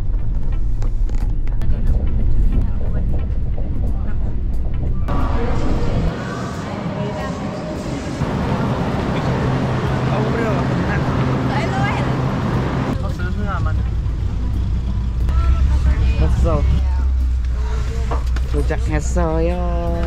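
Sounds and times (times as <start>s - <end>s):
low engine hum: 0.0s - 20.0s
people talking: 5.1s - 13.8s.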